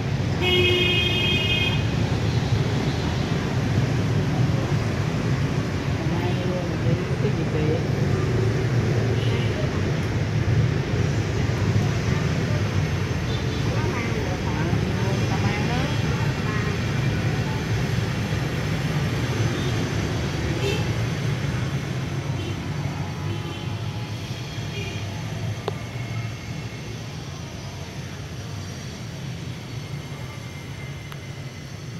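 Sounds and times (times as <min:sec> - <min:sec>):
city street traffic rumble: 0:00.0 - 0:31.9.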